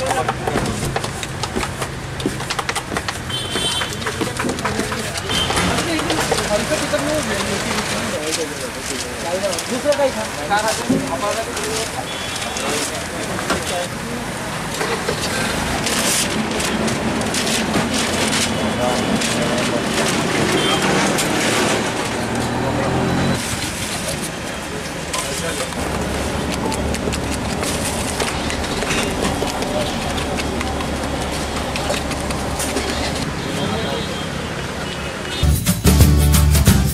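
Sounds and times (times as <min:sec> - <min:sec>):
music: 0:35.4 - 0:36.9.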